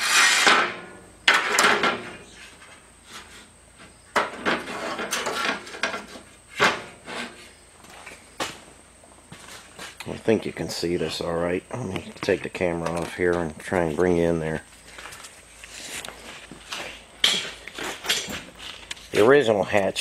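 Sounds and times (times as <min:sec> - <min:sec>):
metal sections scraping and clanking: 0:00.0 - 0:07.6.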